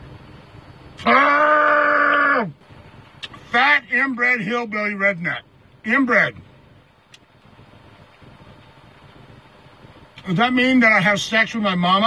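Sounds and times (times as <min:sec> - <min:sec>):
vehicle cabin low rumble: 0:00.0 - 0:12.0.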